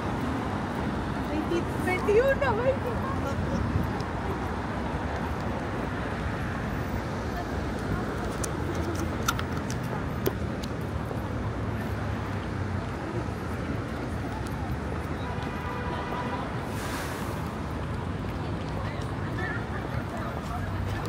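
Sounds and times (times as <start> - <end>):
pedestrians' voices: 0.0 - 21.0
traffic rumble: 0.0 - 21.0.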